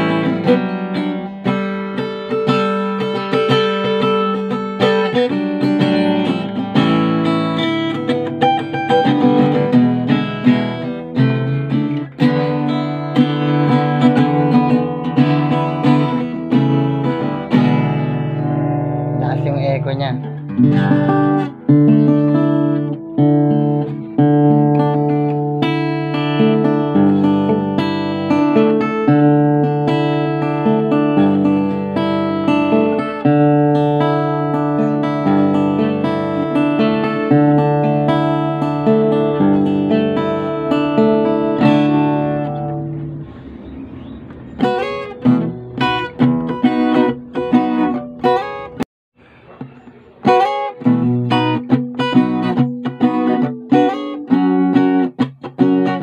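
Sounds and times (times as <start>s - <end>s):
fingerstyle acoustic guitar: 0.0s - 56.0s.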